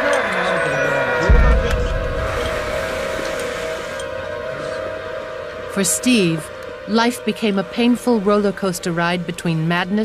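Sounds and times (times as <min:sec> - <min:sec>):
sustained drone music: 0:00.0 - 0:10.0.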